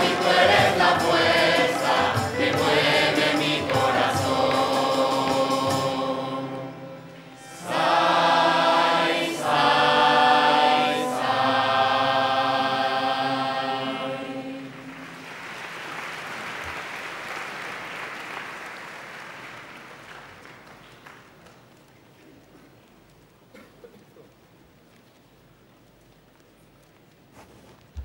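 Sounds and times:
choir singing chords: 0:00.0 - 0:15.4
audience applause: 0:14.5 - 0:22.2.

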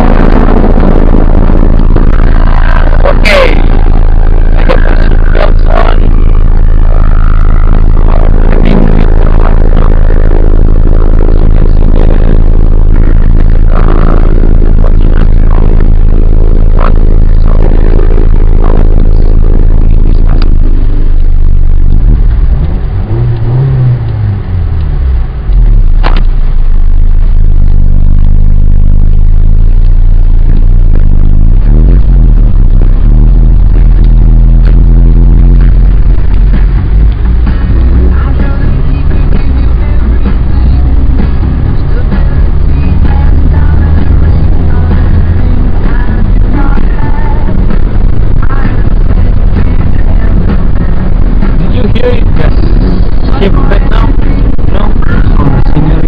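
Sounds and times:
car accelerating hard: 0:00.0 - 0:56.0
music playing: 0:00.0 - 0:56.0.

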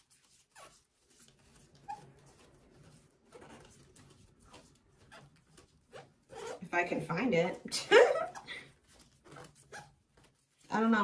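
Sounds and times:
cards rustling and sliding: 0:00.0 - 0:06.3, 0:08.7 - 0:10.7
woman speaking: 0:06.6 - 0:08.2, 0:10.7 - 0:11.0.

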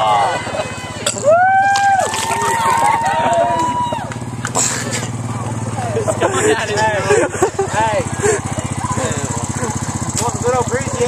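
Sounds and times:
people exclaiming and laughing: 0:00.0 - 0:04.4, 0:05.0 - 0:11.0
small engine idling: 0:00.0 - 0:11.0.

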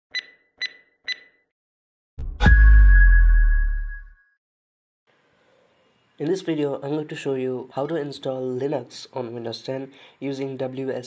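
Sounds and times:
short electronic beeps: 0:00.1 - 0:01.4.

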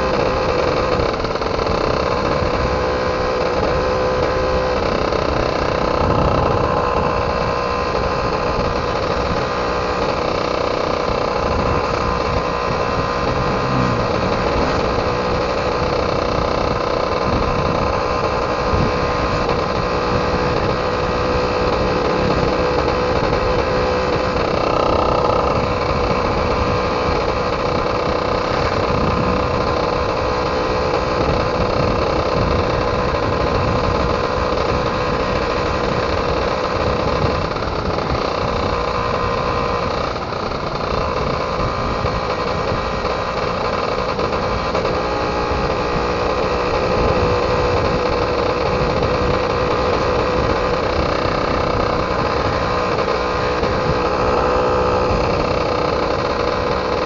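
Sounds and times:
two-stroke motorcycle engine: 0:00.0 - 0:57.0
wind rumbling on microphone: 0:00.0 - 0:57.0.

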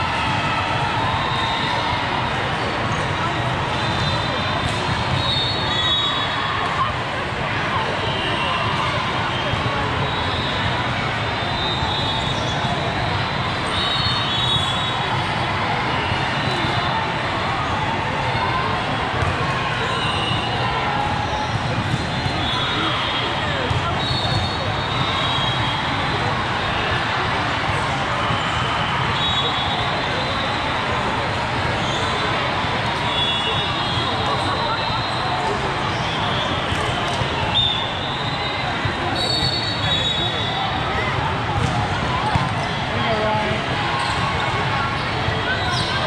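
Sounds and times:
many people talking: 0:00.0 - 0:46.0
balls bouncing and struck: 0:19.2 - 0:19.4, 0:36.6 - 0:37.4, 0:41.5 - 0:42.8.

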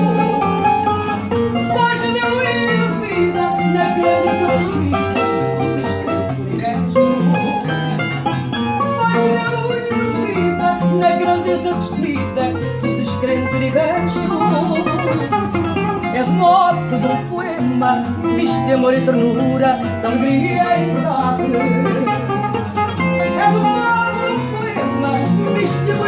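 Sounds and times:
woman singing: 0:00.0 - 0:08.0, 0:08.6 - 0:26.0
plucked guitars playing: 0:00.0 - 0:26.0.

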